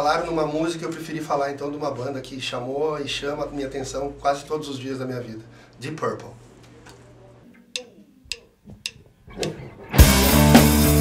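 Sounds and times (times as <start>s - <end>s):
rock band playing: 9.5s - 11.0s.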